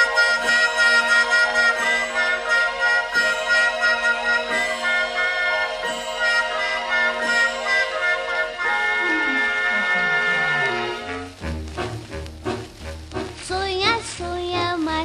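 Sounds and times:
orchestra playing held chords: 0:00.0 - 0:13.4.

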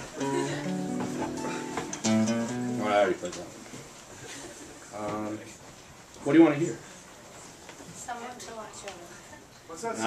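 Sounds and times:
acoustic guitar picking: 0:00.0 - 0:03.3.

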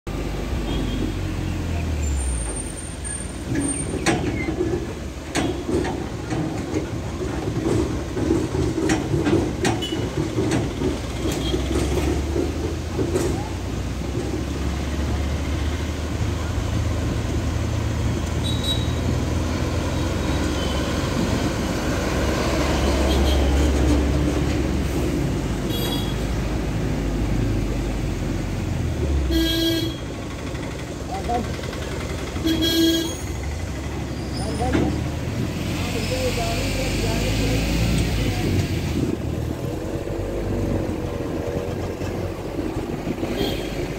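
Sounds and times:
vehicle engine and road rumble: 0:00.0 - 0:43.9
rattles and knocks: 0:03.4 - 0:15.1.

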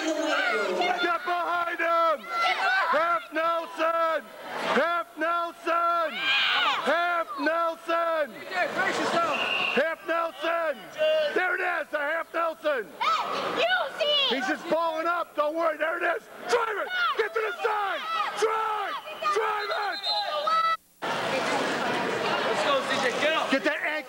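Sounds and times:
spectators shouting encouragement: 0:00.0 - 0:20.8
crowd noise: 0:00.0 - 0:24.0.

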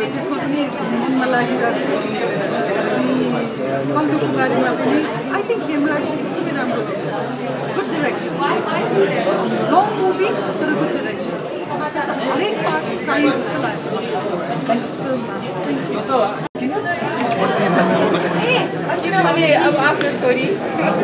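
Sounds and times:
woman talking: 0:00.0 - 0:01.9
crowd chatter: 0:00.0 - 0:21.0.

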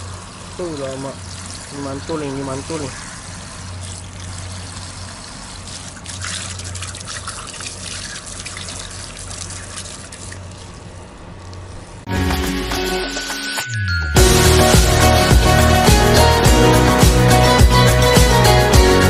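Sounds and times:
hose water splashing on metal: 0:00.0 - 0:11.8
outro music: 0:12.1 - 0:19.0.

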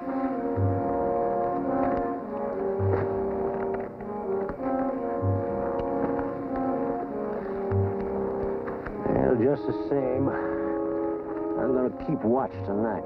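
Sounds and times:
sustained brass chords: 0:00.0 - 0:13.0.

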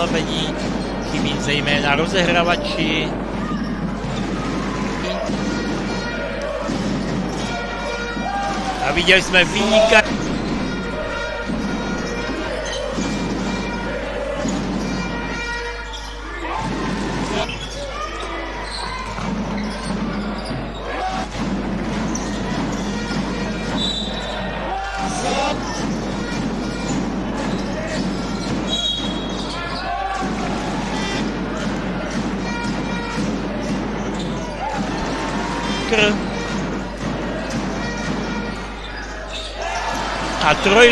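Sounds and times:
basketball bouncing on court: 0:00.0 - 0:08.8, 0:09.4 - 0:17.8, 0:18.6 - 0:40.9
crowd noise: 0:00.0 - 0:40.9.

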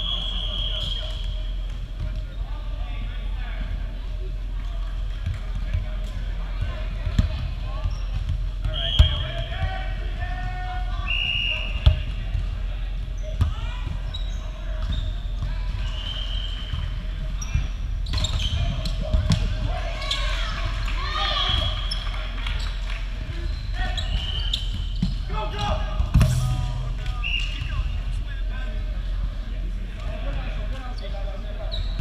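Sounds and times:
low hum of hall: 0:00.0 - 0:32.0
sneakers squeaking on floor: 0:07.8 - 0:09.4, 0:13.0 - 0:19.2, 0:23.4 - 0:25.3, 0:30.9 - 0:32.0.

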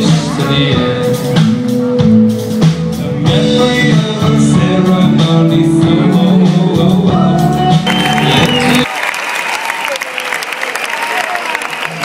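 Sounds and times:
audience applauding: 0:07.7 - 0:12.0
audience shouts: 0:07.9 - 0:12.0.

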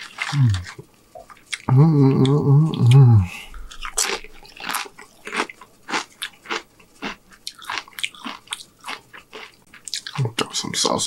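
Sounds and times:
chewing crunchy chip: 0:00.0 - 0:10.8.

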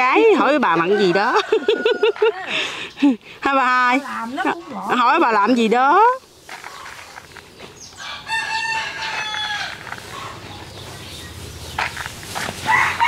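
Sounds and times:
rooster crowing: 0:00.9 - 0:02.4, 0:08.0 - 0:10.4, 0:12.7 - 0:13.0.

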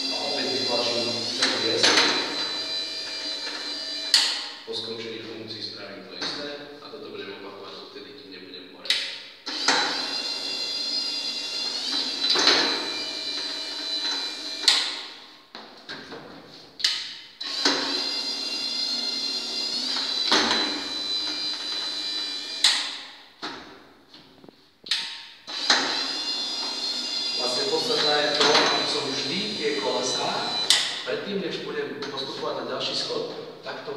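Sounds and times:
electric motor whining: 0:00.0 - 0:04.5, 0:09.5 - 0:15.2, 0:17.4 - 0:23.0, 0:25.5 - 0:31.1
wheels clicking and clunking: 0:25.0 - 0:29.2.

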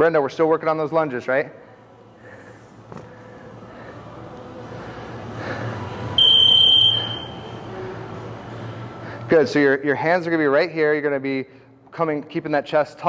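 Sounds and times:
high-pitched electronic beep: 0:06.2 - 0:07.5.

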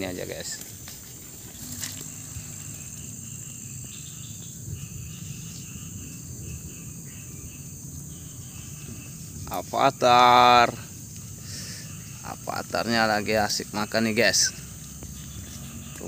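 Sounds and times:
high-pitched insect drone: 0:00.0 - 0:16.0.

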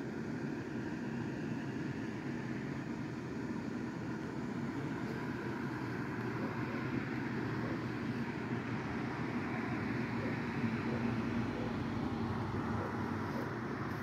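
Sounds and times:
electric blower fans whirring: 0:00.0 - 0:14.0.

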